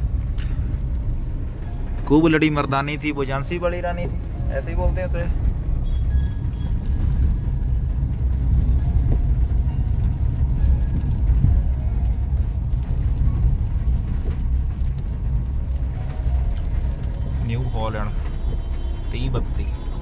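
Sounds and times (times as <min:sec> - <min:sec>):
car driving on wet road: 0:00.0 - 0:20.0.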